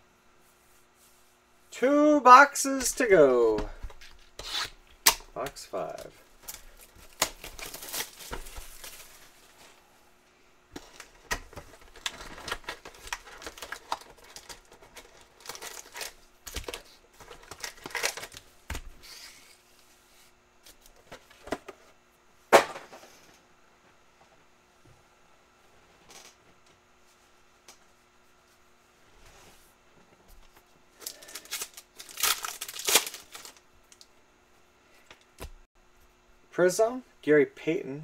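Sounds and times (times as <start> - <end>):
cardboard and foil packs handled: 5.8 - 9.8, 10.7 - 19.6, 31.0 - 34.0
shrink-wrap crinkling and tearing: 6.4 - 9.5, 10.8 - 18.4, 31.0 - 34.1.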